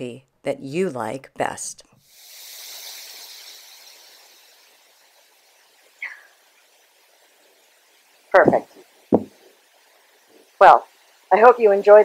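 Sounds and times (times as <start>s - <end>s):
faint outdoor rushing hiss: 0.7s - 12.0s.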